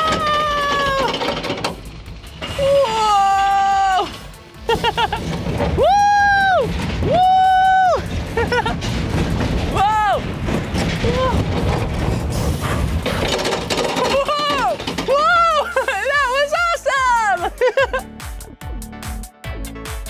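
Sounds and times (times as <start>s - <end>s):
riders crying out: 0.0s - 1.5s
roller coaster rumbling on track: 0.0s - 18.7s.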